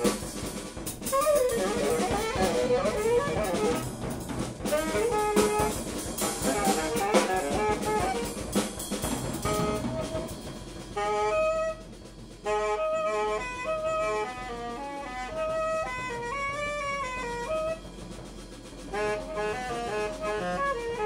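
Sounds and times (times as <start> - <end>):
drums and cymbals: 0.0 - 21.0
tenor saxophone: 0.0 - 21.0.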